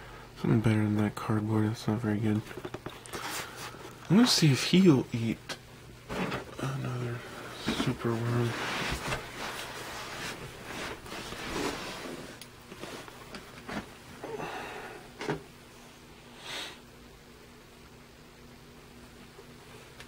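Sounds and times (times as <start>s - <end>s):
faint low hum: 0.0s - 20.0s
plastic tubs rustling and clicking: 2.3s - 4.3s
short sniff: 16.4s - 16.8s.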